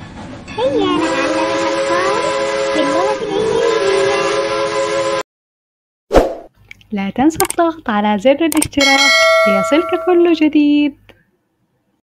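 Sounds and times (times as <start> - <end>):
cartoon train whistle: 0.8 - 5.2.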